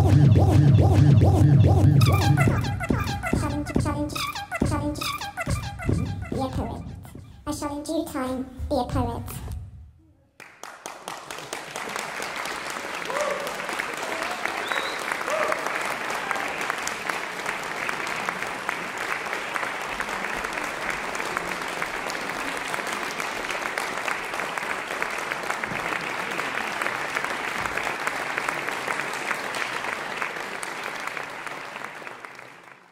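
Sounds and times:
audience applauding: 0:10.4 - 0:32.9.

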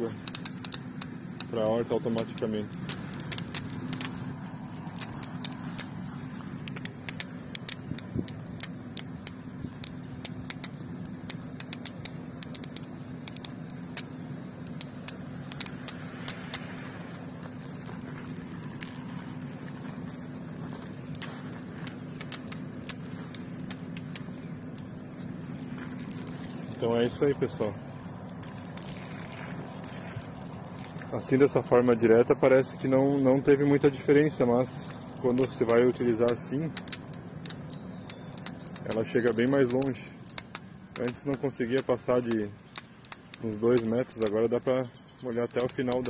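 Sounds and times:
hose water spraying crackle: 0:00.0 - 0:46.0
pump humming: 0:00.0 - 0:46.0.

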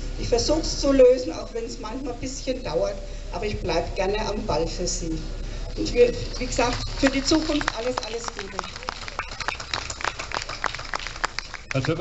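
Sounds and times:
scattered applause: 0:05.7 - 0:12.0.

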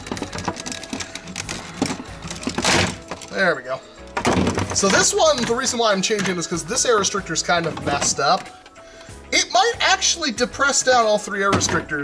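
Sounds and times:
plastic parts clicking and rattling: 0:00.0 - 0:06.9, 0:07.5 - 0:09.1.

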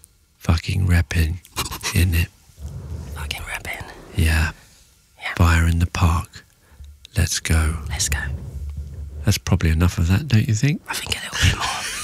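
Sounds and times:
close-miked whispering: 0:01.6 - 0:12.0.

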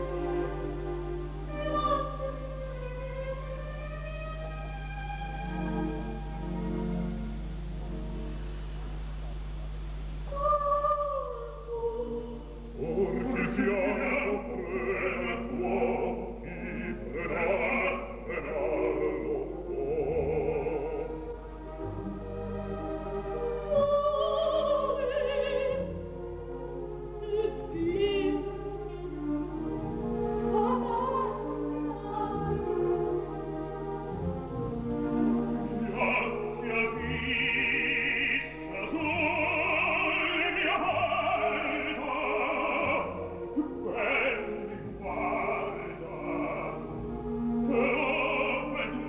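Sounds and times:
operatic soprano singing high note: 0:00.0 - 0:06.4, 0:10.3 - 0:21.3, 0:23.7 - 0:25.9, 0:30.5 - 0:32.9, 0:35.7 - 0:46.9, 0:47.7 - 0:49.0.

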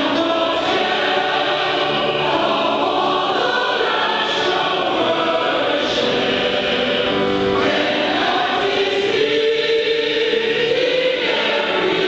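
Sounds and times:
mixed choir singing a hymn: 0:00.0 - 0:12.0.

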